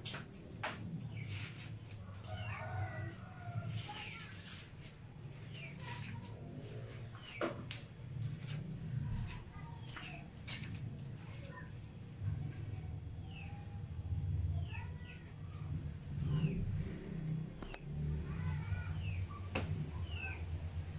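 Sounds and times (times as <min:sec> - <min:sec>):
steady low hum: 0:00.0 - 0:20.9.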